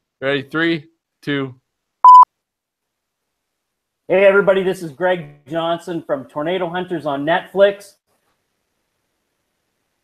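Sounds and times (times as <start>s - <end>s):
short electronic beep: 2.0s - 2.3s.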